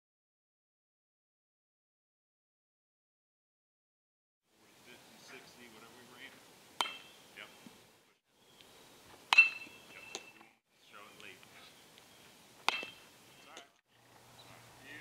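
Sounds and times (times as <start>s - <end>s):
metal bat pinging balls: 6.8s - 7.2s, 9.3s - 10.5s, 12.6s - 13.8s.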